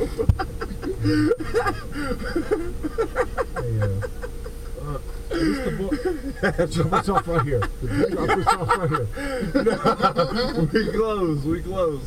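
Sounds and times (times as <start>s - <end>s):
passengers talking indistinctly: 0.0s - 12.0s
steady low hum: 0.0s - 12.0s.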